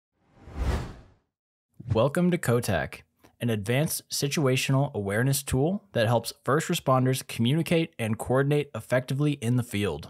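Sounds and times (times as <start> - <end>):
whoosh sound effect: 0.2 - 1.2
narrator speaking: 1.8 - 10.0.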